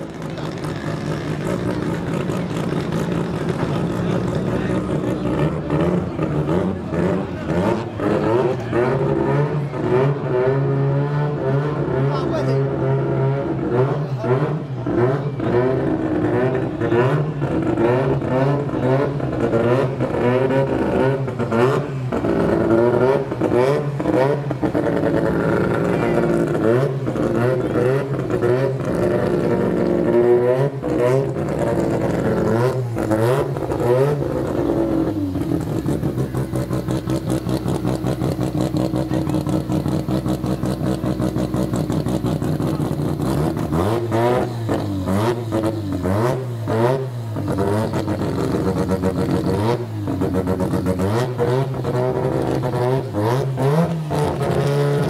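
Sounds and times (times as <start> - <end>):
car engine idling and blipped: 0.0 - 55.0
race car engines revving hard: 0.0 - 55.0.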